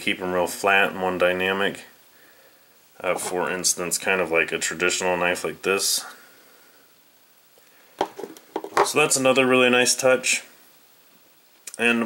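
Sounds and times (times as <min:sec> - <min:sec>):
man speaking: 0:00.0 - 0:02.0, 0:03.0 - 0:06.2, 0:08.8 - 0:10.6, 0:11.7 - 0:12.0.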